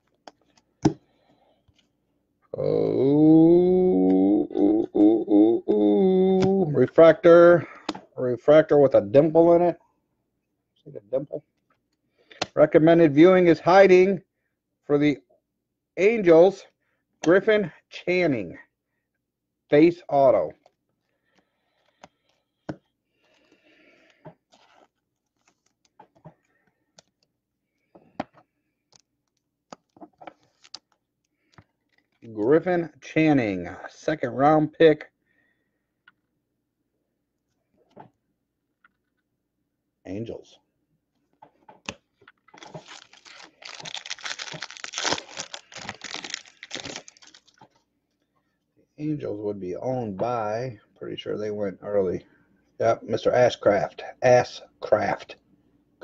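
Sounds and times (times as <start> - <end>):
wrapping crinkling: 24.4 - 26.0, 29.0 - 32.3, 42.3 - 47.8
cards rustling and sliding: 24.4 - 26.3, 42.3 - 47.7.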